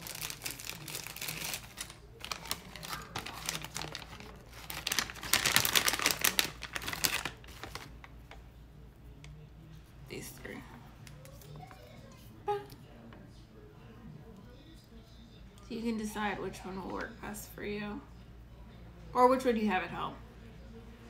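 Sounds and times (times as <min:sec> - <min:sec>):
wooden sticks crinkling and clicking: 0:00.0 - 0:08.4.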